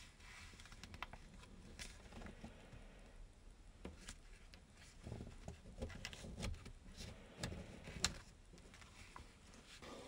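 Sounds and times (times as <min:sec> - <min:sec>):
paper crinkling and creasing: 0:00.0 - 0:02.6
light paper crackles: 0:00.1 - 0:02.5.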